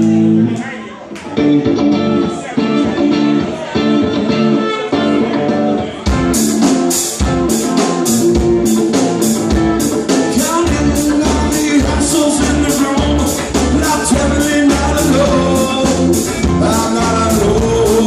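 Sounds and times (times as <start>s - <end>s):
bass guitar: 0.0s - 18.0s
drums: 0.0s - 18.0s
electric guitar riff: 0.0s - 18.0s.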